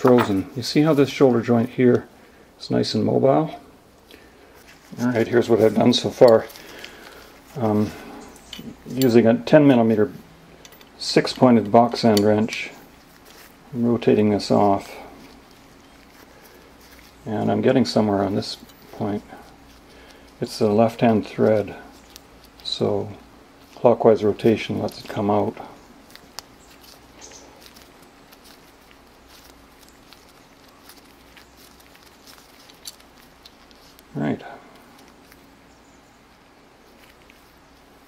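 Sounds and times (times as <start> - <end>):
steady low hum: 0.0 - 38.0
pliers clicking and rubbing: 26.1 - 34.1.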